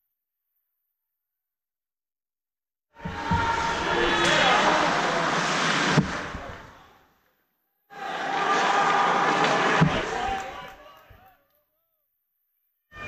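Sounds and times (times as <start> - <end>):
skating and stick noise: 3.0 - 6.9, 8.0 - 11.3
voices of players and spectators: 3.0 - 7.0, 7.9 - 12.0.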